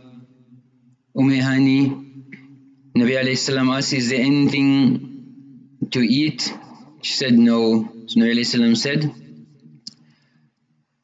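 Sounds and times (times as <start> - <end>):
man speaking: 1.2 - 2.2, 3.0 - 5.1, 5.8 - 9.2.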